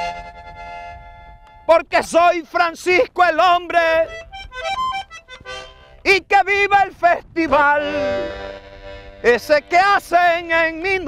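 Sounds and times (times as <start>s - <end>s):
accordion playing: 0.0s - 1.9s, 2.6s - 11.0s
person singing: 6.2s - 8.5s.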